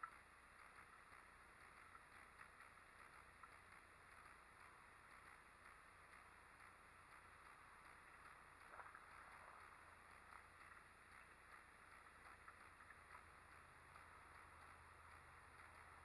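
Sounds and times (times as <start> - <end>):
faint scattered ticks: 0.0 - 16.0.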